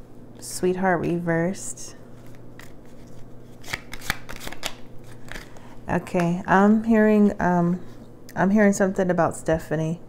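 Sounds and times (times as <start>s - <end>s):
cards being shuffled: 2.2s - 6.3s.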